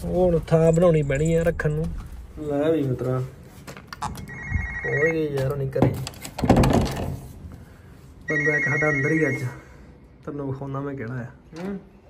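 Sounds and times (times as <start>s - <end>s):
steady high tone: 4.2s - 5.4s, 8.3s - 9.7s
electronic ringtone melody: 4.3s - 5.3s, 8.3s - 9.6s.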